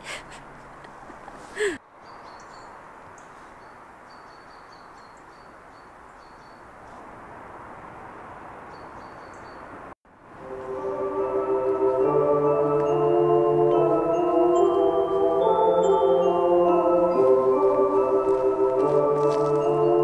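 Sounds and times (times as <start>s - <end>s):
outdoor background noise: 0.0s - 20.0s
mallet percussion music: 10.4s - 20.0s.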